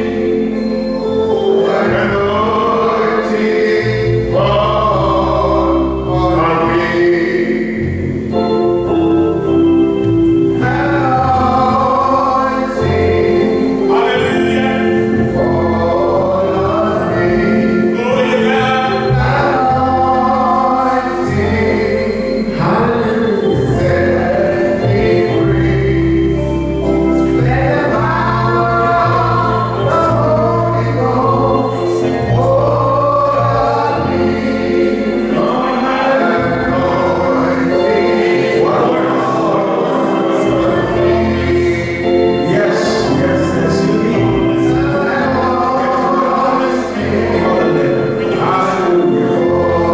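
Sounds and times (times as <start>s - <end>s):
congregation singing: 0.0s - 49.9s
organ accompaniment: 0.0s - 49.9s.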